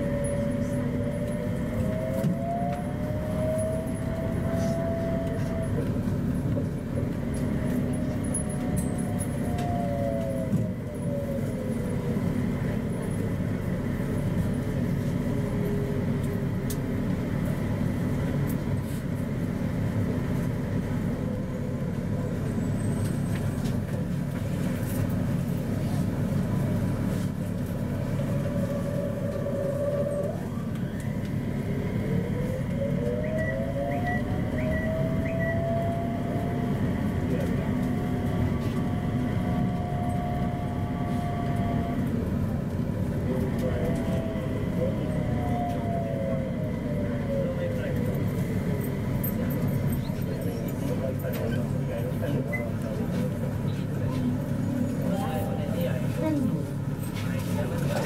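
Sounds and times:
rumble of train tyres on guideway: 0.0s - 58.0s.

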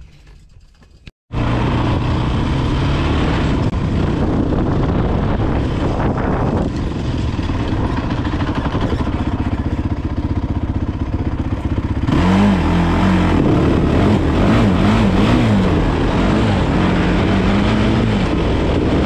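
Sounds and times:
atv engine revving: 1.3s - 19.0s.

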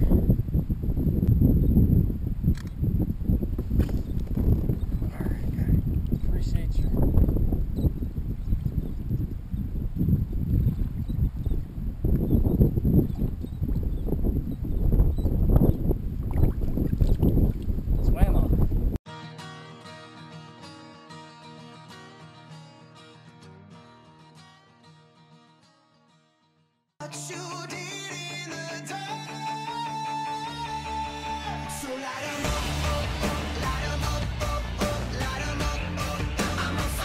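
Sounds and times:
wind buffeting microphone: 0.0s - 19.0s
water moving against kayak: 7.0s - 18.0s
guitar music: 19.1s - 37.0s.

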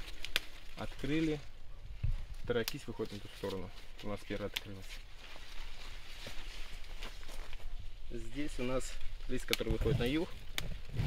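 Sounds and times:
soft footsteps on soil: 0.0s - 10.2s
rustling of plant foliage: 0.0s - 11.0s.

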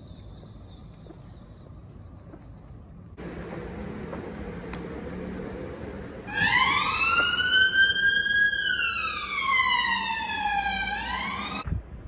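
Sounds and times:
emergency siren wailing: 6.3s - 11.6s.

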